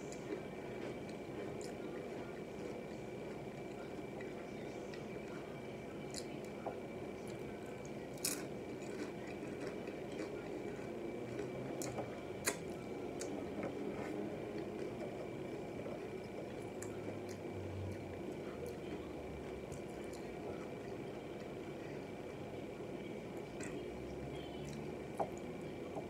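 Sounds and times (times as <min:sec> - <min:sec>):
close chewing: 0:07.2 - 0:20.8.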